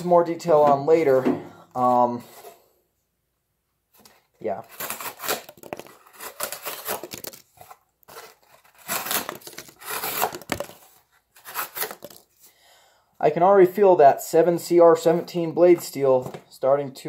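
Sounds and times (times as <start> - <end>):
knife slicing through cardboard: 4.7 - 7.2, 8.1 - 10.7.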